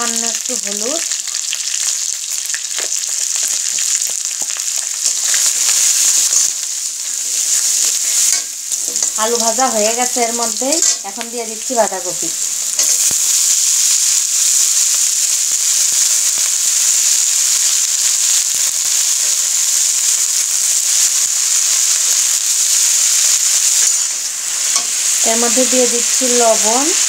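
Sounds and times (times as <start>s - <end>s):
vegetables frying in hot oil: 0.0s - 27.0s
metal spatula stirring in pan: 23.6s - 25.2s.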